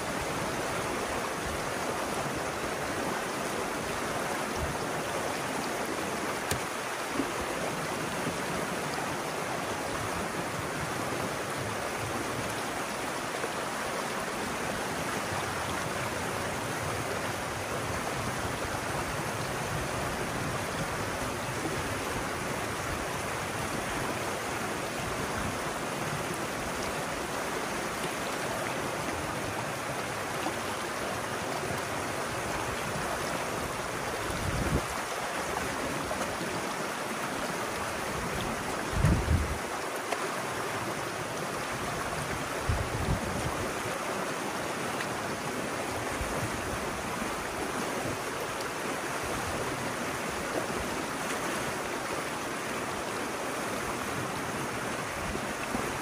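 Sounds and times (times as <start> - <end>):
water rushing through channel: 0.0 - 56.0.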